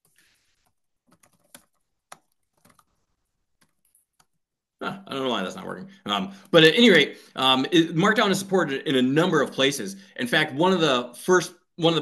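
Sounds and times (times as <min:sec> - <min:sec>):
faint keyboard typing: 0:00.0 - 0:04.4.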